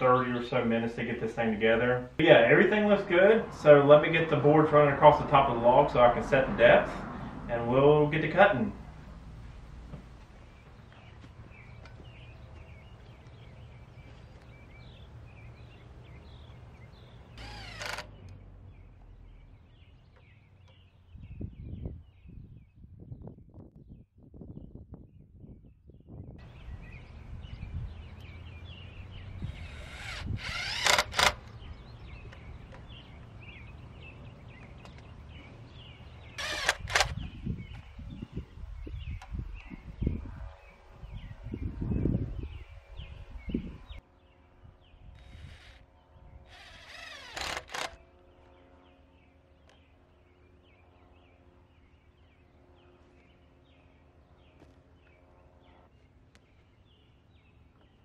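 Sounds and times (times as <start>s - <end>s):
birds chirping: 0.0s - 58.0s
low rumble: 2.3s - 23.4s
loud whirring work noise: 16.5s - 18.4s, 28.4s - 37.9s, 42.1s - 56.7s.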